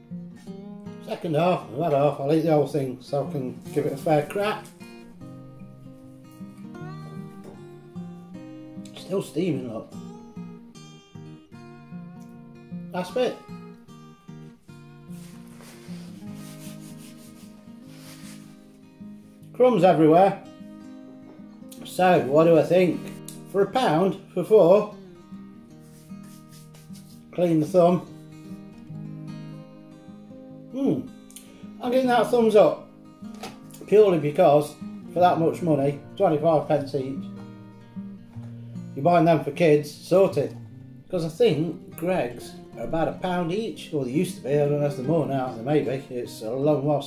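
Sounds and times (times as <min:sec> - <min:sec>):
acoustic guitar playing: 0:00.0 - 0:47.0
hands brushing off crumbs: 0:15.1 - 0:18.7, 0:25.8 - 0:27.4.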